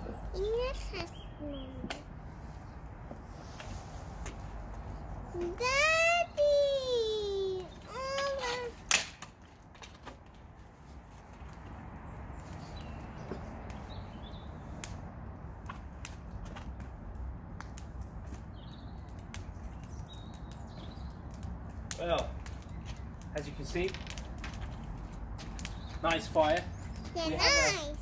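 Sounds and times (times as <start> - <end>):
child's voice: 0.0 - 2.1, 5.3 - 8.9, 27.1 - 28.0
bonfire crackling: 0.0 - 28.0
rumble of flames: 0.0 - 28.0.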